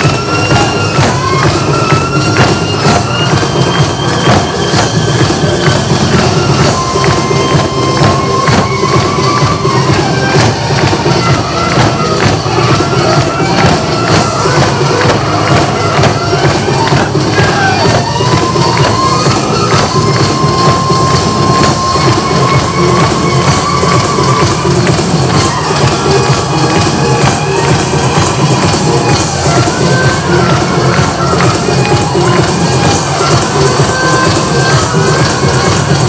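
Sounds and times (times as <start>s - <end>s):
fast hand drumming: 0.0s - 36.0s.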